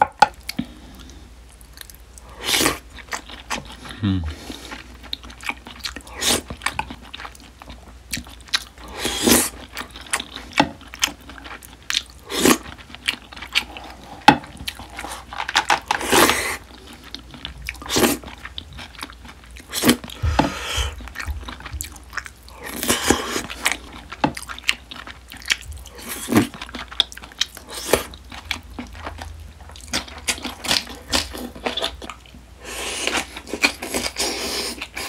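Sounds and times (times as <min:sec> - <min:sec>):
close-miked chewing: 0:00.4 - 0:35.0.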